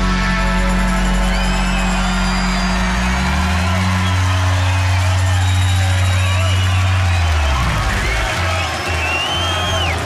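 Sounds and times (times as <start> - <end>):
crowd cheering and whooping: 0.0 - 10.0.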